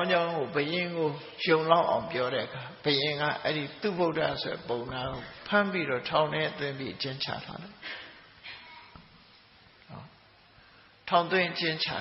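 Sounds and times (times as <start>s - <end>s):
faint hiss: 0.4s - 12.0s.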